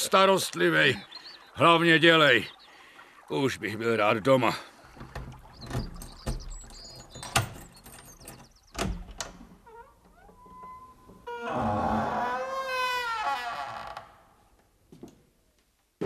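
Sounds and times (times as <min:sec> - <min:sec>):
wooden door creaking: 0:05.1 - 0:14.4.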